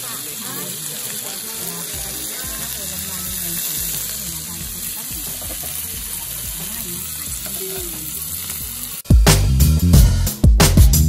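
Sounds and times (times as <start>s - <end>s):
meat sizzling on hot plate: 0.0s - 9.1s.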